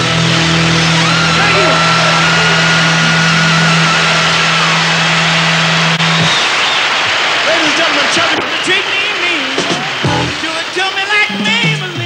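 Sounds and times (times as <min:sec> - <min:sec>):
crowd cheering: 0:00.0 - 0:12.0
rock band holding a chord: 0:00.0 - 0:12.0.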